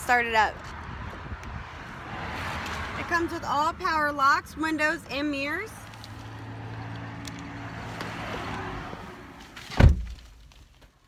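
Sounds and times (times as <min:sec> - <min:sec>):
loud thunk: 0:09.7 - 0:10.2.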